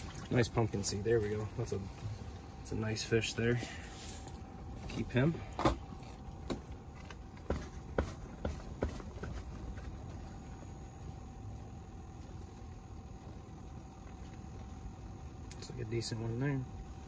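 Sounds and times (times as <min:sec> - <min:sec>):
faint hum: 0:00.0 - 0:17.0.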